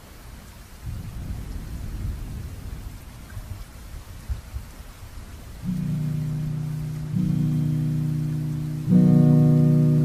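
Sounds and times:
steady rain falling: 0:00.0 - 0:10.0
rolling thunder rumble: 0:00.8 - 0:04.7.

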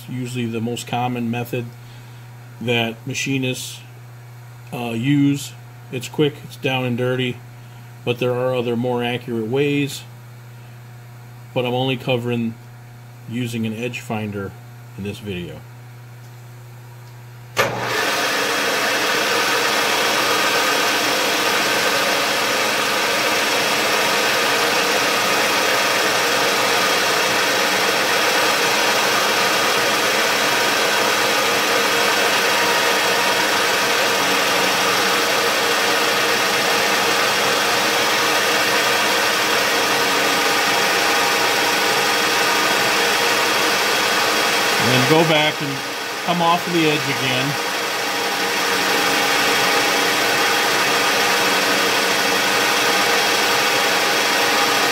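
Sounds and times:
milling machine running: 0:17.6 - 0:54.9.

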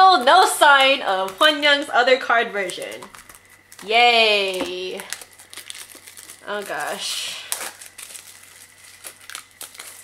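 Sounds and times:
plastic shrink wrap crinkling: 0:00.0 - 0:10.0.

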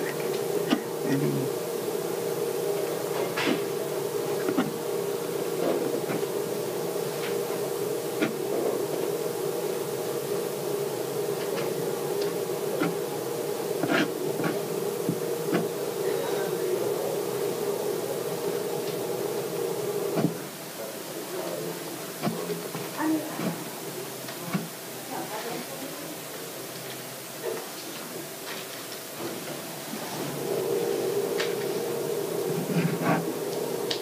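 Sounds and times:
steady mechanical hum: 0:00.0 - 0:34.0.

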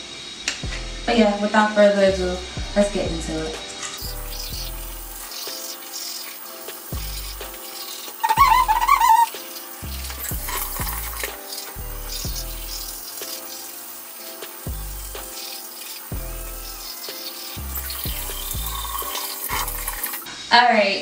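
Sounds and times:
background music with deep bass: 0:00.0 - 0:20.3
toothbrush scrubbing teeth: 0:04.0 - 0:20.3.

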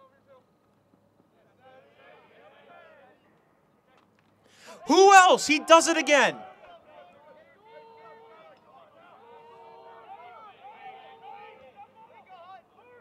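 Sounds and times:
players shouting and calling: 0:04.7 - 0:06.5.

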